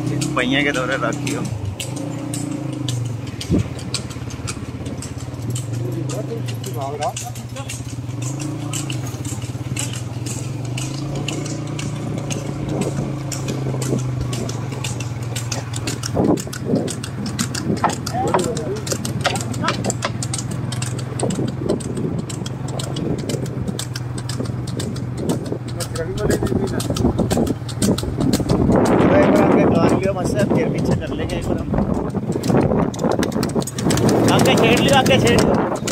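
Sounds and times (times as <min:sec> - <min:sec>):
cart clattering on paved road: 0:00.0 - 0:35.9
motorcycle engine running: 0:00.0 - 0:35.9.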